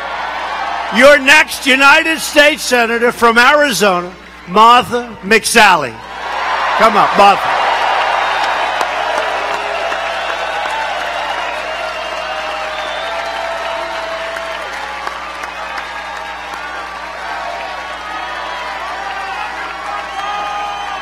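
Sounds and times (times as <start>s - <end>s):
crowd cheering and applauding: 0.0s - 2.6s, 6.0s - 21.0s.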